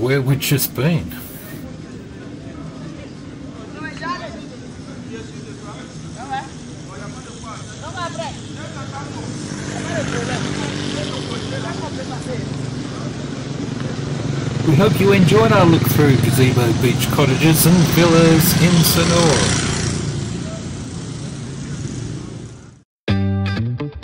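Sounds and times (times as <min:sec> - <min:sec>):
background voices: 0:00.0 - 0:01.6, 0:14.6 - 0:19.8
steady engine hum: 0:00.0 - 0:22.8
motor scooters passing: 0:00.8 - 0:22.8.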